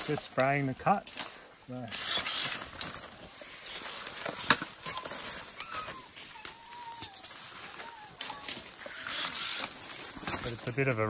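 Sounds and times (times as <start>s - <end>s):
leaves rustling: 0.0s - 11.0s.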